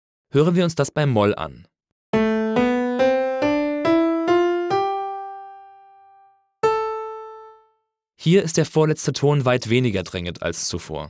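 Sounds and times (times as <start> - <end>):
piano playing a scale: 2.1 - 7.9.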